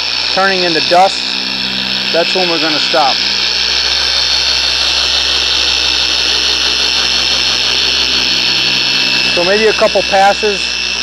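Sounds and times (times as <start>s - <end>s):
car polisher motor whirring: 0.0s - 11.0s.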